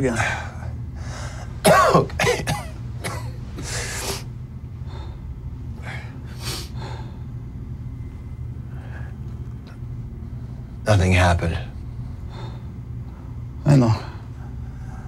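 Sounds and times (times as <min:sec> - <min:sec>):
steady low hum: 0:00.0 - 0:15.0
breaths: 0:00.2 - 0:01.6, 0:04.8 - 0:07.4, 0:11.8 - 0:15.0
man coughing: 0:01.5 - 0:04.0.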